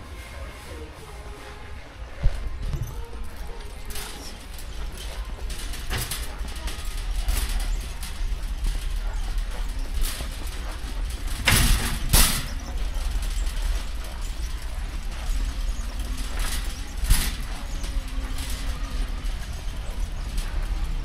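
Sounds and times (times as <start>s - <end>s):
shopping cart rolling on concrete: 0.0s - 21.0s
cart jolts: 2.5s - 21.0s.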